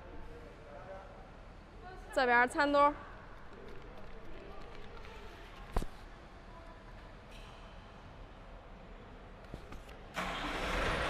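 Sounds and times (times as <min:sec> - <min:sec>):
faint murmur in a large hall: 0:00.0 - 0:10.2.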